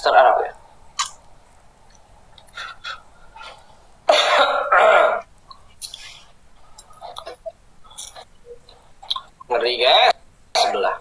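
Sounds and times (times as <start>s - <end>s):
person coughing: 4.1s - 5.2s.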